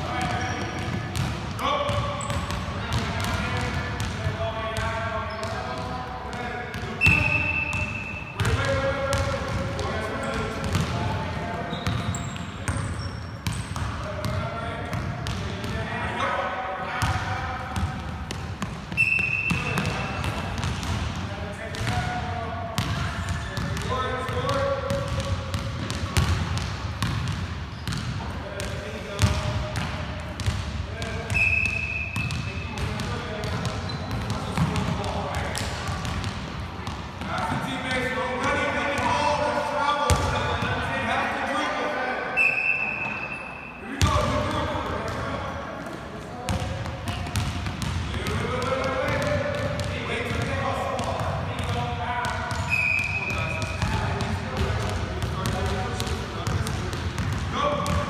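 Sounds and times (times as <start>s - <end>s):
basketballs bouncing on wooden floor: 0.0s - 15.9s, 17.0s - 39.2s, 40.1s - 40.8s, 46.4s - 58.0s.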